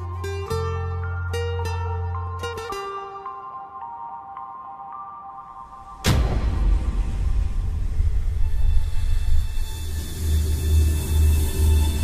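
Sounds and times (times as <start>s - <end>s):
tense drama music drone: 6.0s - 12.0s.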